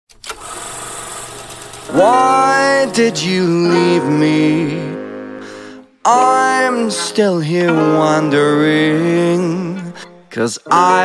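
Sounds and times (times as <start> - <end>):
person singing: 1.8 - 11.0.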